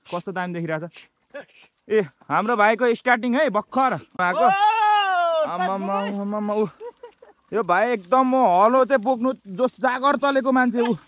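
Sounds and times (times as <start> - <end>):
man shouting: 4.2 - 6.3, 10.6 - 11.0.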